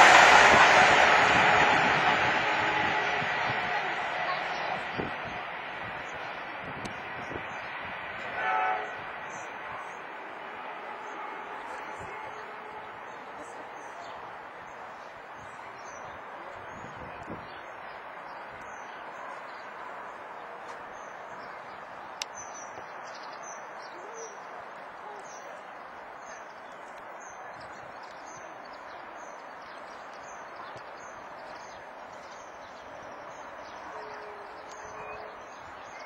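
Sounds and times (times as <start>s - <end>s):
low hooting notes: 0.0s - 13.6s
train horn blast: 0.0s - 14.0s
train running on track: 0.0s - 36.0s
songbirds chirping: 6.9s - 36.0s.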